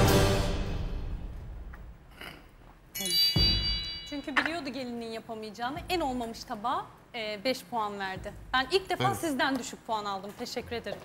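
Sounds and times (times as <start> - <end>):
chime sound effect with low hit: 3.2 - 4.1.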